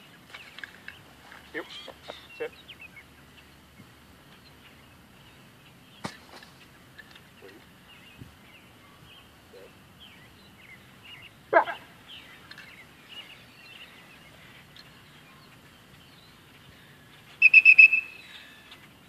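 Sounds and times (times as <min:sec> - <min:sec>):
birds chirping: 0:00.0 - 0:19.0
shrill whistle pips: 0:17.4 - 0:18.3.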